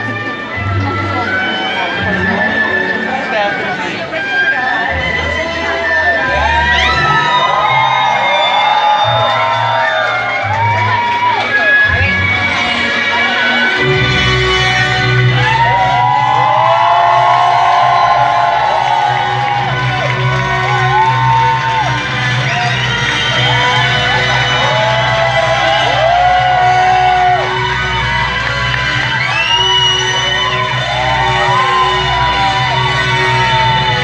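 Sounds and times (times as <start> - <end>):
audience whooping and cheering: 4.9 - 12.6, 13.3 - 34.0.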